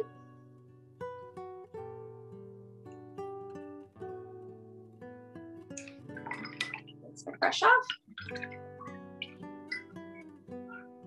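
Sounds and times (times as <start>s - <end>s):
plucked guitar notes: 0.0s - 0.2s, 5.7s - 11.0s.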